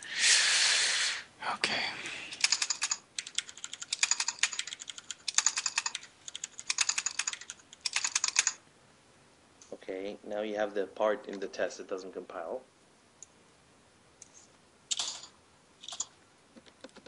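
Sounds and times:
computer keyboard typing: 0:02.4 - 0:08.6.

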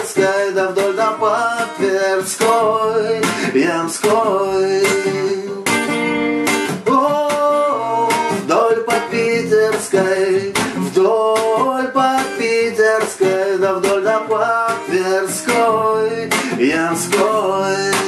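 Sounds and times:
acoustic guitar strummed reggae rhythm: 0:00.0 - 0:18.0.

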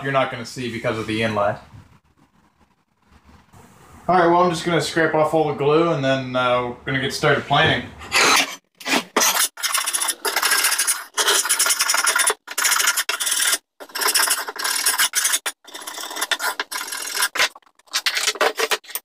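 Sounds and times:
scraper blade scraping glue off wood: 0:08.2 - 0:19.0.

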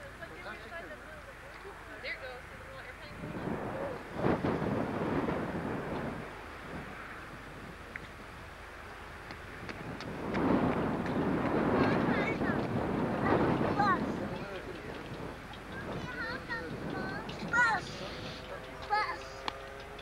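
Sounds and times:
faint voices: 0:00.0 - 0:09.2, 0:10.6 - 0:20.0
wind buffeting microphone: 0:00.0 - 0:20.0.

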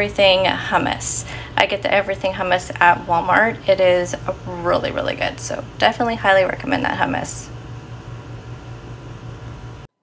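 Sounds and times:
low hum: 0:00.0 - 0:09.9.

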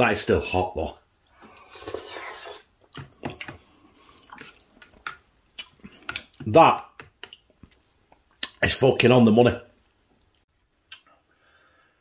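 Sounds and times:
wet chewing with smacks: 0:02.6 - 0:08.6.

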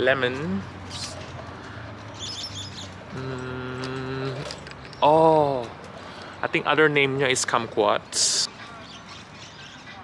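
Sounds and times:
small bird chirping: 0:02.1 - 0:03.3
man humming: 0:03.1 - 0:04.6.

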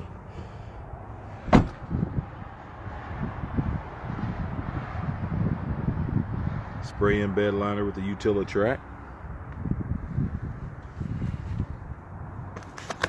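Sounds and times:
truck door slamming: 0:01.4 - 0:02.0.

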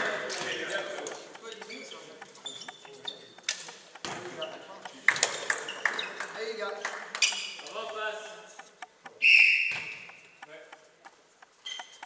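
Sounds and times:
players' voices: 0:00.0 - 0:11.3
shoes squeaking on hall floor: 0:00.0 - 0:12.0.

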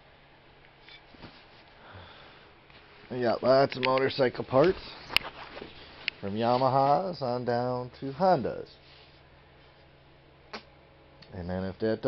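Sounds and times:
low steady hum: 0:00.0 - 0:12.0
soft handling tick: 0:03.6 - 0:06.7.

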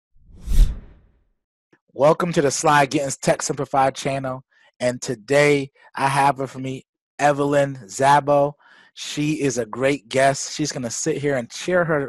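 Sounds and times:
whoosh with deep rumble: 0:00.3 - 0:01.0.

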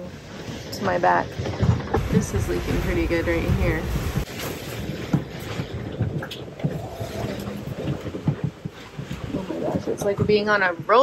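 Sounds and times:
strong wind blowing: 0:00.7 - 0:10.5
hull knocks and rattles: 0:01.2 - 0:11.0.

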